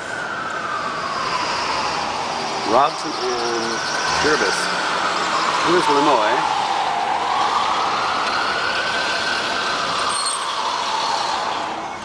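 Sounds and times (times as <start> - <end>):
police siren wailing: 0.0 - 12.0.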